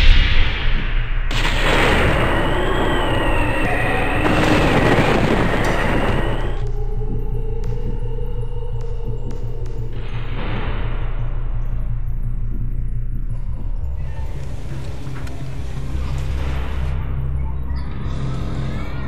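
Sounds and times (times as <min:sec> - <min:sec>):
loud rushing boom: 0:00.0 - 0:06.6
low ominous music: 0:00.0 - 0:19.0.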